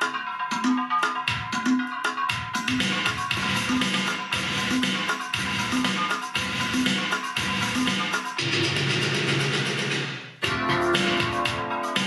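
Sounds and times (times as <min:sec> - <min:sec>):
music from a vinyl record: 0:00.0 - 0:12.0.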